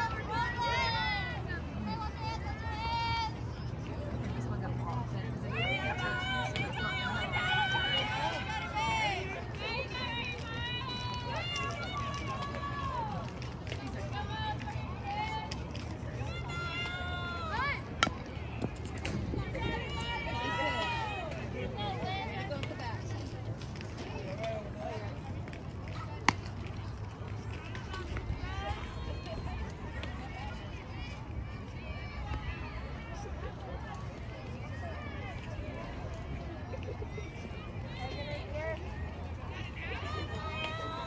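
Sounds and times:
faint shouting voices: 0:00.0 - 0:41.0
outdoor noise: 0:00.0 - 0:41.0.

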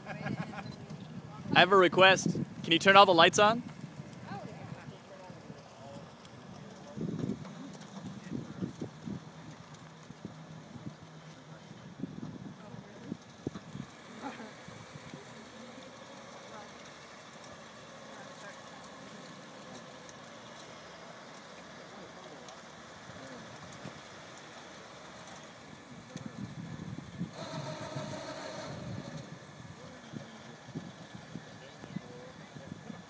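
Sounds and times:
wind on microphone: 0:26.2 - 0:33.0.

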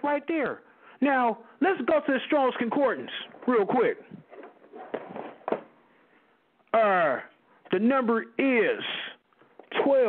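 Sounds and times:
faint rustling over telephone: 0:03.1 - 0:06.4.

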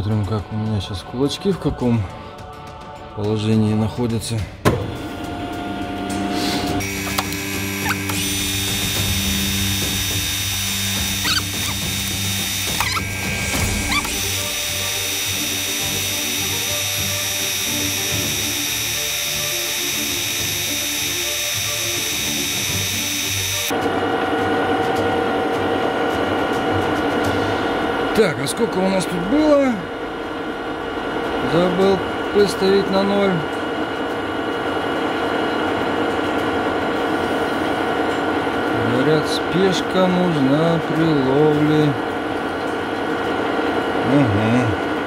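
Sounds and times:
high squeal of cutting tool: 0:06.8 - 0:23.7
metal lathe machine whine: 0:06.8 - 0:23.7.

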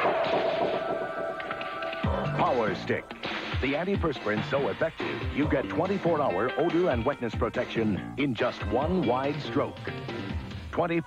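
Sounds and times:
loud noisy impact effect: 0:00.0 - 0:02.0
commercial music: 0:00.0 - 0:11.0.

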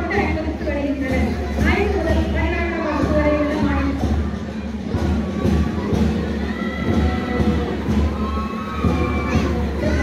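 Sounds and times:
crowd noise: 0:00.0 - 0:10.0
drums beating steady rhythm: 0:00.0 - 0:10.0
marching band playing: 0:00.0 - 0:10.0.

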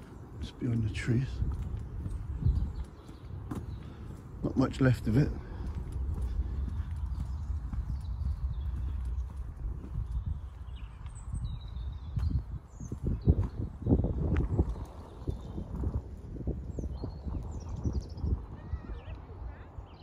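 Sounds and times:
wind on microphone: 0:00.0 - 0:20.0
footsteps through dry undergrowth: 0:01.0 - 0:15.8.

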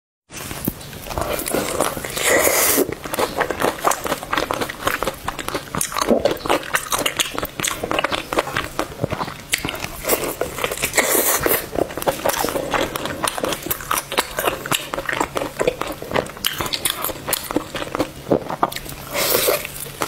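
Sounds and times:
biting fried chicken: 0:00.4 - 0:20.0
chewing with small clicks: 0:00.6 - 0:20.0.

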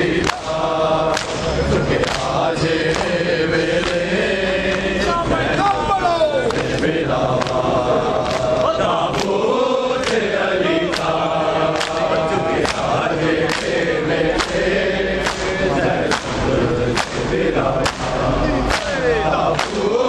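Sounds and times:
crowd of men chanting: 0:00.0 - 0:20.0
chest-beating slaps: 0:15.2 - 0:19.9.

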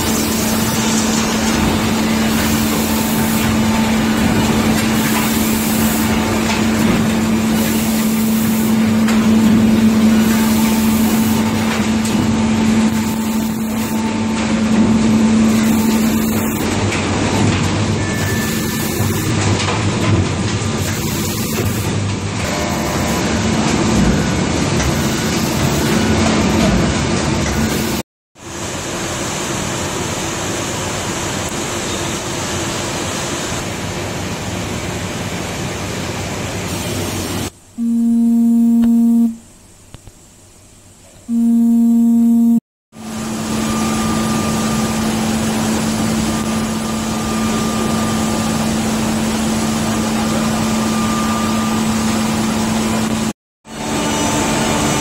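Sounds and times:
steady low hum: 0:37.5 - 0:42.6
low warning horn: 0:37.8 - 0:39.5, 0:41.3 - 0:42.6.

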